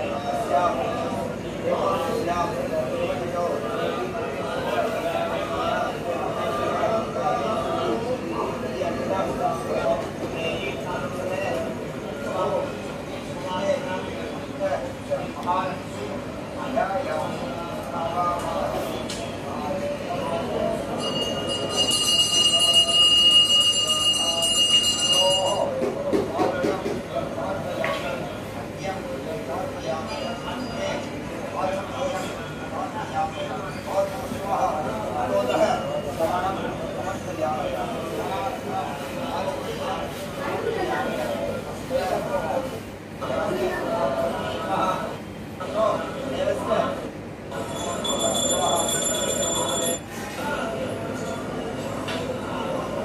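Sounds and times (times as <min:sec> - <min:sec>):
metal bell ringing: 0:21.0 - 0:25.7, 0:47.6 - 0:50.0.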